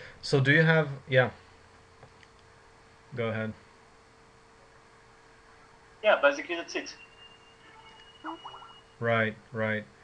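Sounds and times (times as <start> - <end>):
low electrical hum: 0.0 - 10.0
thin high whine: 6.0 - 9.4.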